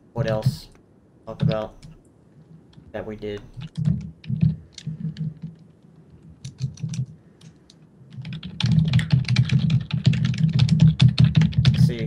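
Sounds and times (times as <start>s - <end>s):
typing on computer keyboard: 3.4s - 12.0s.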